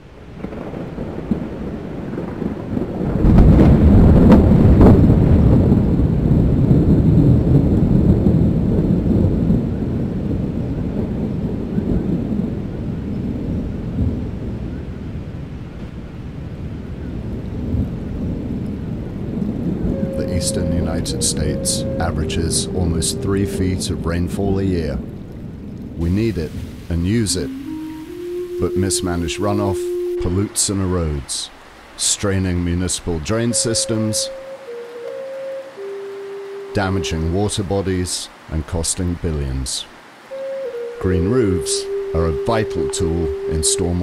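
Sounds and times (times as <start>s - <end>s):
rolling thunder: 0.0s - 32.0s
rain rushing: 0.0s - 44.0s.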